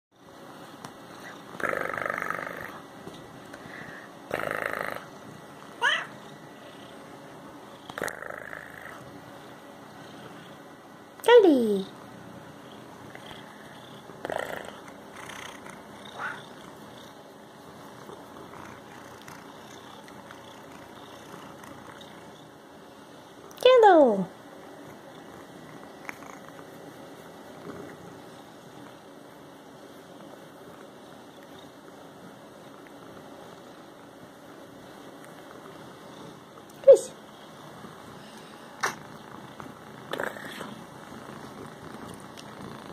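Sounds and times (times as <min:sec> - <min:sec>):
cat purring: 0:00.5 - 0:11.0, 0:11.8 - 0:23.6, 0:24.6 - 0:42.9
cat meowing: 0:05.8 - 0:06.2.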